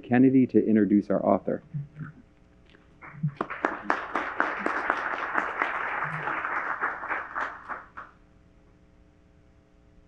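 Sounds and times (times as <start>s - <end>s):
audience applauding: 3.0s - 8.2s.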